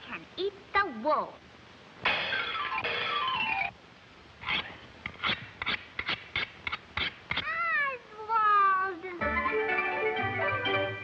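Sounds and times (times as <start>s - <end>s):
orchestral music: 9.2s - 11.0s.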